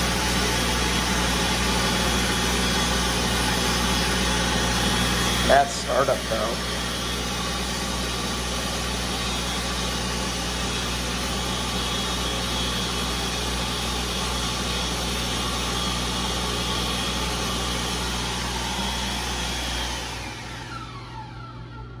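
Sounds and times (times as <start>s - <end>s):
electric hand dryer running: 0.0s - 22.0s
motor winding down: 0.0s - 22.0s.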